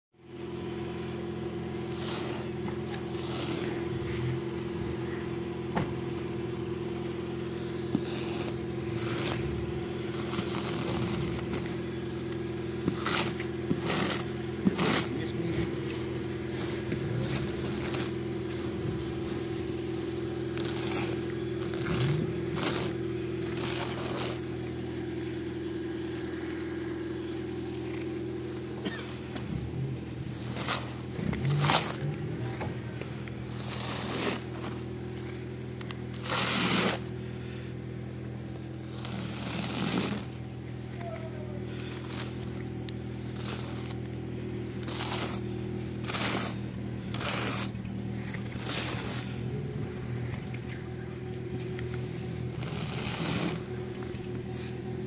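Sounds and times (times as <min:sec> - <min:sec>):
steady motor hum: 0:00.1 - 0:55.0
hand scraper scraping snow: 0:00.8 - 0:27.2, 0:27.8 - 0:55.0.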